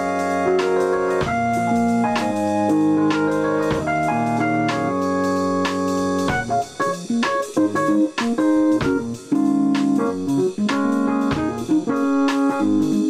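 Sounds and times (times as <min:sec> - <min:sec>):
electronic keyboard chords: 0:00.0 - 0:13.0.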